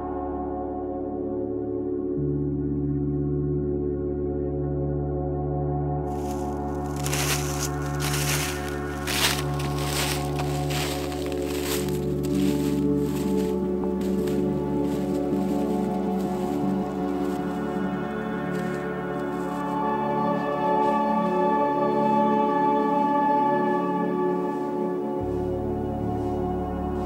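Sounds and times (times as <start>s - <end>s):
ambient music with chiming tones: 0.0s - 27.0s
short rustling noises: 6.2s - 17.5s.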